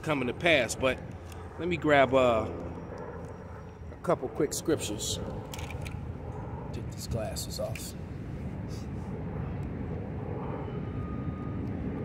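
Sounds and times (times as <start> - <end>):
faint thin whine: 0.0 - 12.0.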